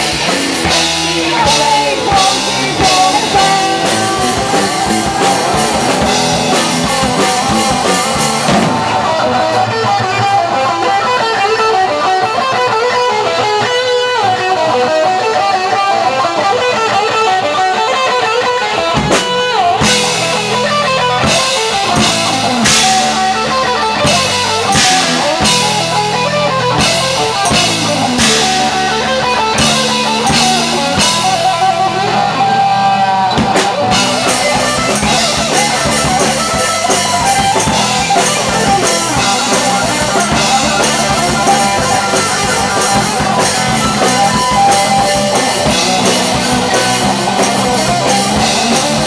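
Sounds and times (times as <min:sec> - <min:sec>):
drum kit and cymbals: 0:00.0 - 0:09.3, 0:18.8 - 0:32.2, 0:33.2 - 0:49.0
bass guitar: 0:00.0 - 0:49.0
electric guitar: 0:00.0 - 0:49.0.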